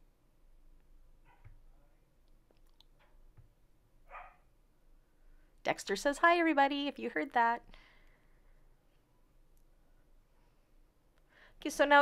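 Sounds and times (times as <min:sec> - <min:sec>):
faint dog bark: 0:01.2 - 0:01.6, 0:04.0 - 0:04.5.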